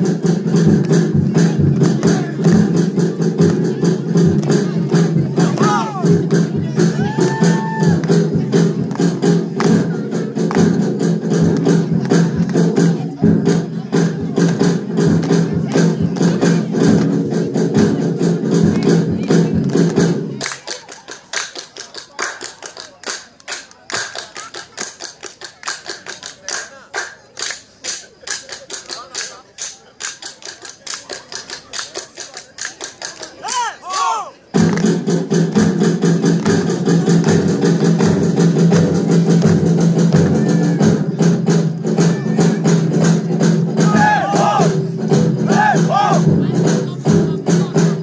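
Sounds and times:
voices: 0.0 - 48.0
sharp claps and knocks: 8.0 - 13.6, 18.7 - 34.0, 34.6 - 40.4
folk dance music with drone: 33.5 - 48.0.

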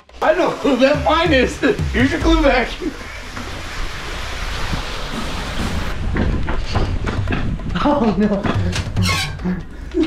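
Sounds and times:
small knocks and rustles: 5.5 - 10.0.

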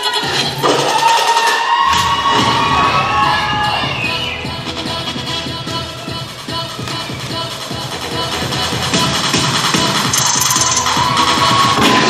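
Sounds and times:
crowd cheering and shouting: 0.0 - 12.0
dance music track: 0.0 - 12.0
bass line: 1.9 - 12.0.

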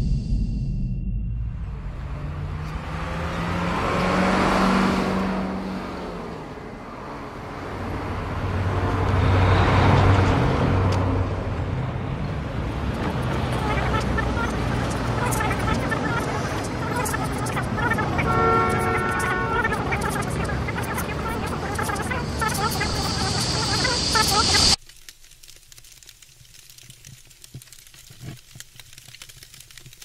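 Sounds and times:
highway traffic noise: 1.6 - 24.8
vehicles passing close by: 1.7 - 24.8.

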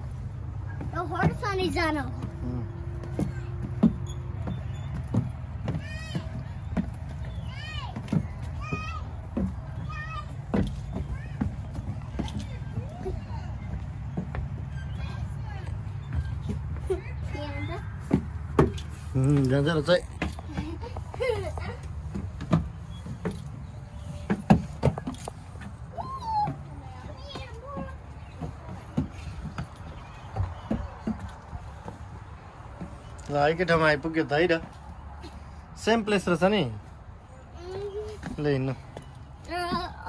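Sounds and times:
footsteps on wooden deck: 0.0 - 40.0
children squealing and calling: 25.9 - 27.9.

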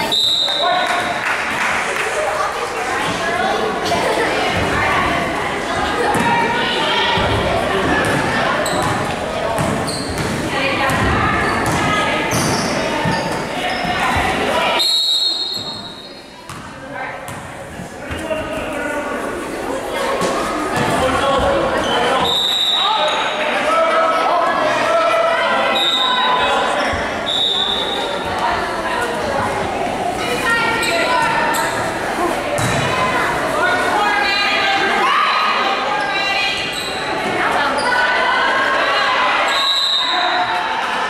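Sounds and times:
voices echoing: 0.0 - 41.0.

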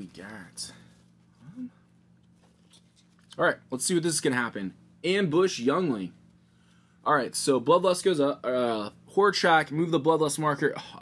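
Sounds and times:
man humming hm: 1.4 - 1.9.

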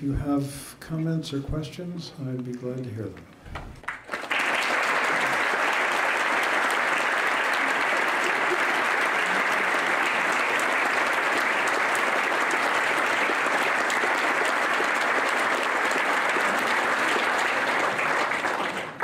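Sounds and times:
audience applauding: 3.6 - 19.0.

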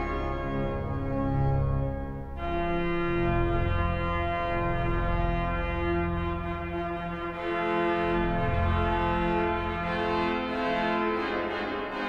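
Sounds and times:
deep organ pedal bass: 0.0 - 12.0
pipe organ chords: 0.0 - 12.0.

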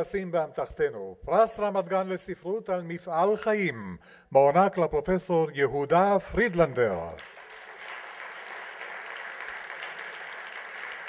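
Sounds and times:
man speaking: 0.0 - 7.2
audience applauding: 7.2 - 11.0.

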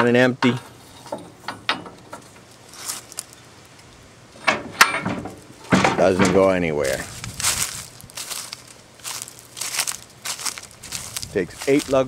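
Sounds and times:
metal clicks and clanks: 0.0 - 6.6.

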